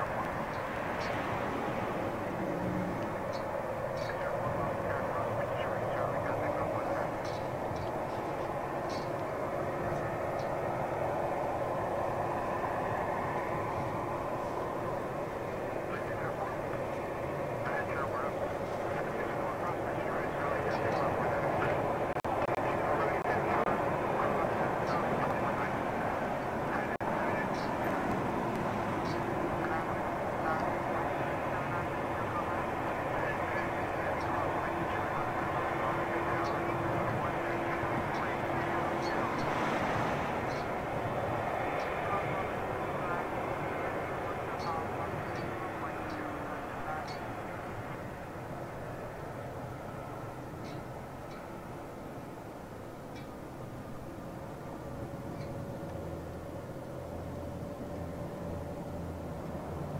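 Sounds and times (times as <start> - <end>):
jet engines rumbling with whine: 0.0 - 59.9
lower engine tone: 0.0 - 59.9.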